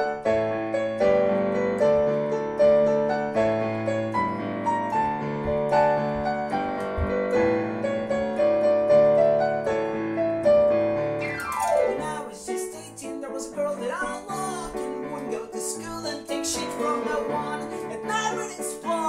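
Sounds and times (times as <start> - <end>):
electric keyboard piano: 0.0 - 19.0
man singing: 11.9 - 19.0.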